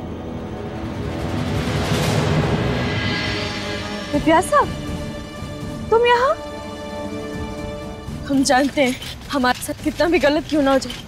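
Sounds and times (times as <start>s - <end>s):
background music sustained chord: 0.0s - 9.3s.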